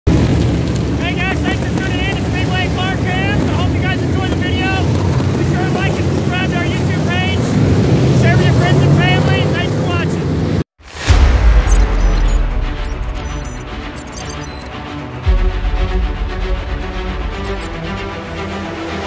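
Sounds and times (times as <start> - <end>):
man talking: 1.0 - 7.6, 8.2 - 10.3
race car engines passing: 2.6 - 10.6.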